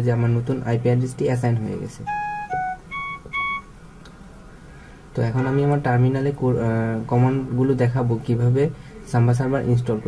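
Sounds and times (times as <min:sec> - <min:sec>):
short electronic beeps: 0:02.1 - 0:03.7.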